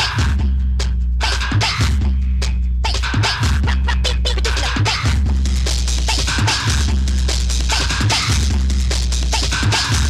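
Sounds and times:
fast breakbeat drums: 0.0 - 10.0.

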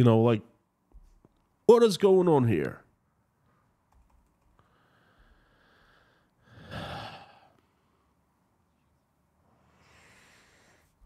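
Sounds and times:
man sighing heavily: 5.6 - 7.6.

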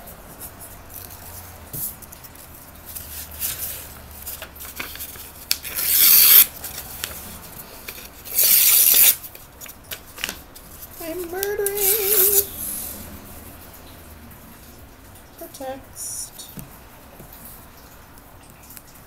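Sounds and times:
book pages rustling: 0.3 - 12.9
paper tearing: 3.0 - 7.2, 7.9 - 10.4, 11.5 - 12.5.

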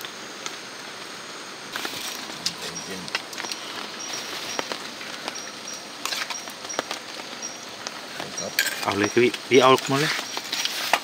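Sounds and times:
insect hiss: 0.0 - 11.0.

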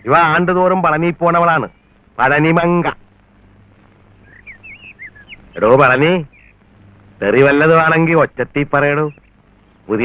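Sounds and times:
faint low hum: 0.0 - 10.0
small bird chirping: 3.8 - 8.0, 8.6 - 9.9.

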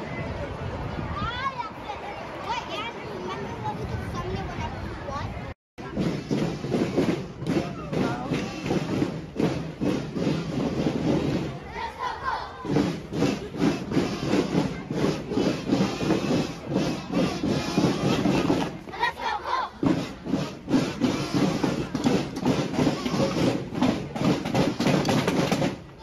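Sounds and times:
snare drums marching cadence: 5.8 - 26.0.

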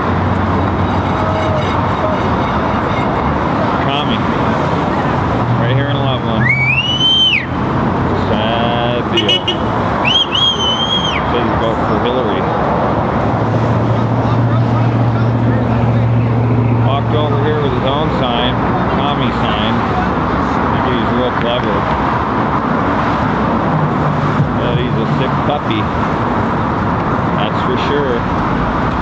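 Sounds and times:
cars passing: 0.0 - 29.0.

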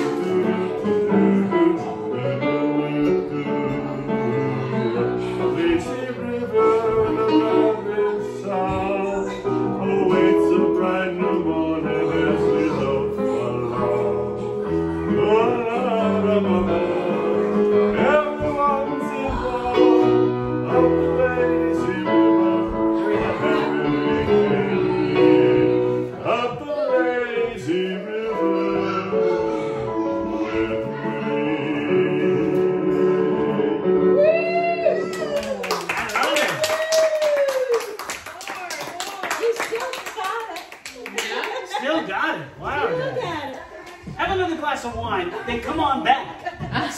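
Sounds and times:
people talking and laughing: 0.0 - 32.9, 38.6 - 46.9
man singing into a microphone: 0.0 - 34.3
people clapping: 35.0 - 42.0.

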